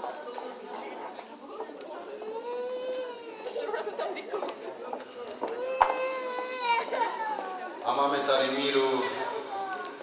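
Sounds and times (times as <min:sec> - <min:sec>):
young child crying: 0:02.2 - 0:03.8, 0:05.6 - 0:07.8
man talking: 0:07.8 - 0:09.3.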